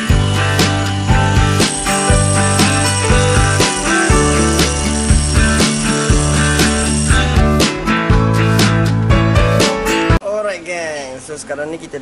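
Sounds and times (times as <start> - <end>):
background music with steady beat: 0.0 - 10.2.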